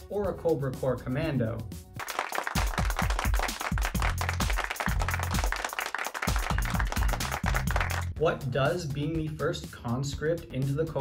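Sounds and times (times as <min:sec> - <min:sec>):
fast beat with bass line: 0:02.0 - 0:11.0.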